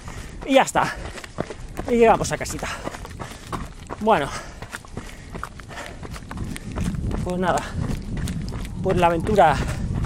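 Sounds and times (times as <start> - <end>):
footsteps running on dirt: 0.0 - 10.0.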